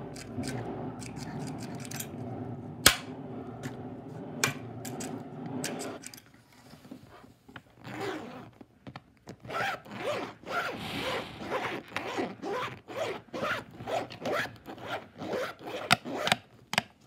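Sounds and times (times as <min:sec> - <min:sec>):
zipper-like rasping strokes: 0:09.5 - 0:16.2.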